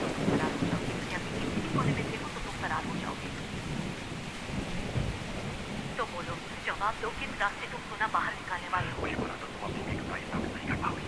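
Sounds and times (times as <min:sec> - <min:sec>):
low rumbling thunder: 0:00.0 - 0:11.0
steady rain: 0:00.0 - 0:11.0.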